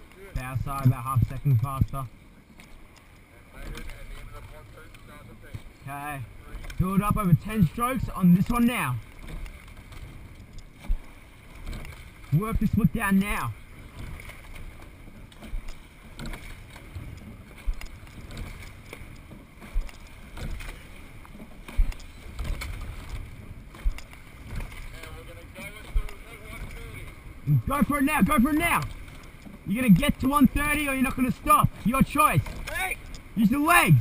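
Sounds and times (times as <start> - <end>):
water rushing past boat: 0.0 - 34.0
sharp low rowing thump: 8.5 - 13.0, 13.8 - 25.1, 25.8 - 34.0.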